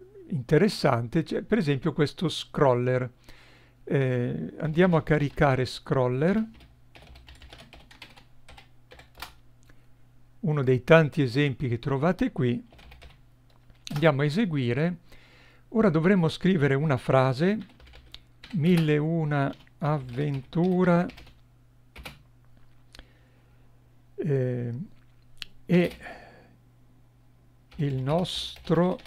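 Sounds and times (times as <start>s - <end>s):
low steady hum: 0.0s - 29.0s
computer keyboard typing: 6.4s - 9.4s, 12.7s - 14.0s, 17.6s - 21.4s, 22.0s - 22.2s, 27.7s - 29.0s.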